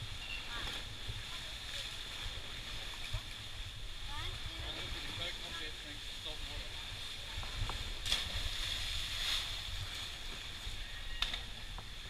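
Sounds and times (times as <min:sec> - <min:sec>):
wind rumbling on microphone: 0:06.8 - 0:12.0.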